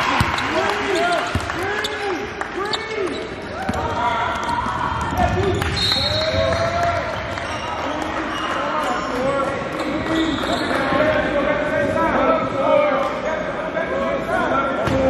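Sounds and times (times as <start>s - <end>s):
sneakers squeaking: 0.0s - 4.7s, 5.4s - 6.6s, 9.7s - 11.1s.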